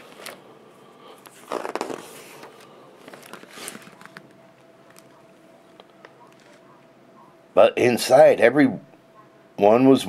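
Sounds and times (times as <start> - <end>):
book pages turning rustle: 0.0 - 0.4, 1.2 - 6.7.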